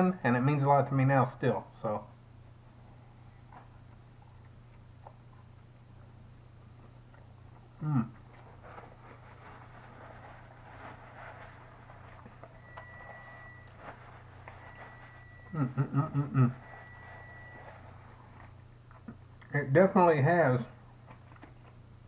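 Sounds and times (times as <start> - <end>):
low hum: 0.0 - 19.8
man chewing: 3.4 - 10.6
man humming mm: 7.8 - 8.2, 15.5 - 16.7.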